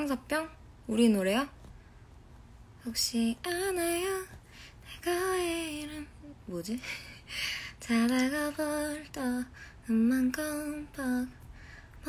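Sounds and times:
woman singing unaccompanied: 0:02.8 - 0:07.1, 0:07.7 - 0:11.4.

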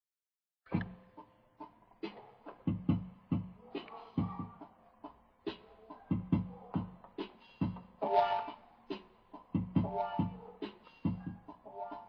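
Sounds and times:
hip-hop beat: 0:00.7 - 0:12.0.

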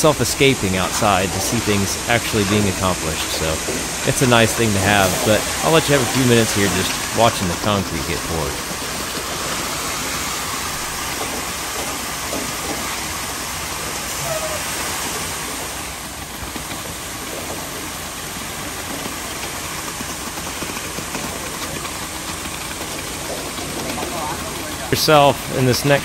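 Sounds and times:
truck engine running: 0:00.0 - 0:14.1, 0:15.3 - 0:26.0
wet concrete rushing down chute: 0:00.0 - 0:26.0.

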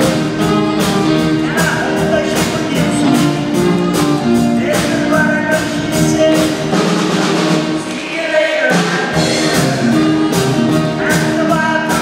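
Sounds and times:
tenor sax notes: 0:00.0 - 0:04.8
electric guitars: 0:00.0 - 0:07.7
upright string bass: 0:00.0 - 0:07.8
drum kit beat: 0:00.0 - 0:12.0.

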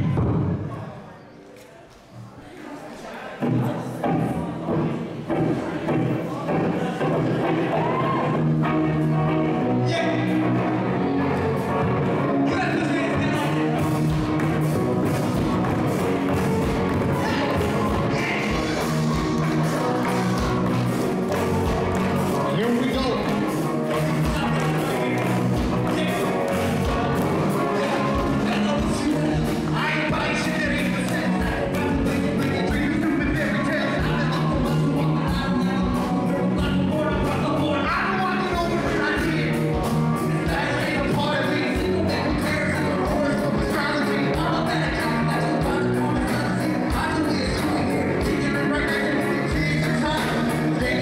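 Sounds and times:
live rock band playing: 0:05.2 - 0:51.0.

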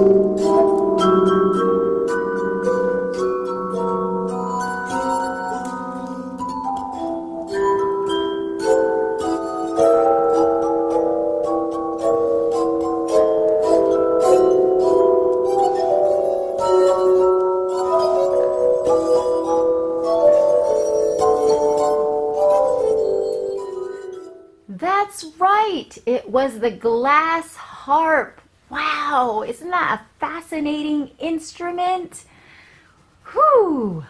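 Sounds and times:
glass harp melody: 0:00.0 - 0:24.7.

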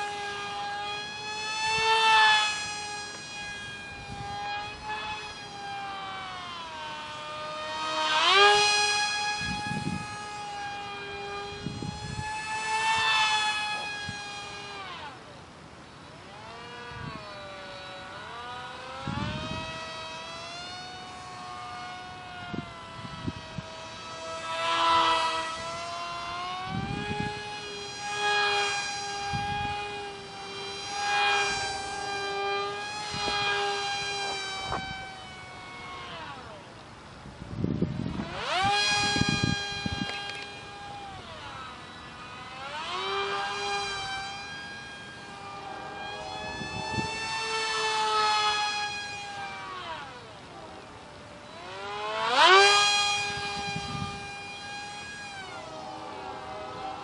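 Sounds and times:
high-pitched model plane motor whine: 0:00.0 - 0:57.0.

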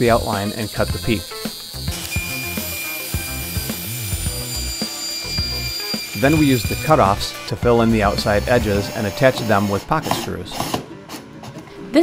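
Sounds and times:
table saw cutting wood: 0:00.0 - 0:11.6
background music: 0:00.0 - 0:12.0.

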